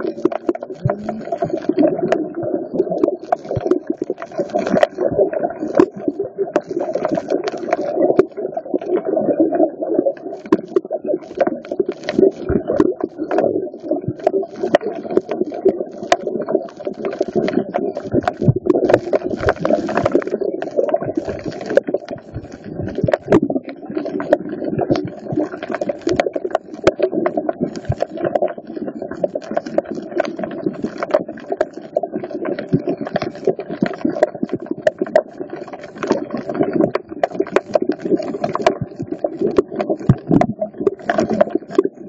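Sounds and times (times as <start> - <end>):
muffled rumble of moving water: 0.0 - 42.0
underwater clicks and crackles: 0.0 - 42.0.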